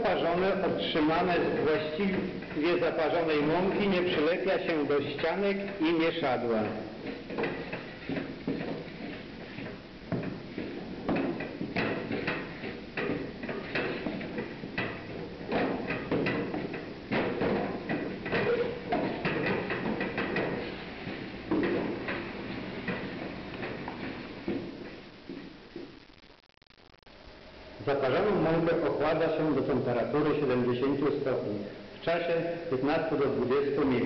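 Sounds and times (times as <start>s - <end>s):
utensil scraping and knocking pot: 0.4s - 25.1s.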